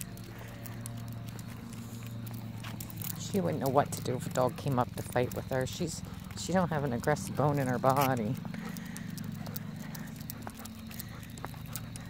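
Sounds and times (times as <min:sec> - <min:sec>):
dog claws ticking on asphalt: 0:00.0 - 0:12.0
footsteps on asphalt: 0:00.0 - 0:12.0
steady low hum: 0:00.0 - 0:12.0.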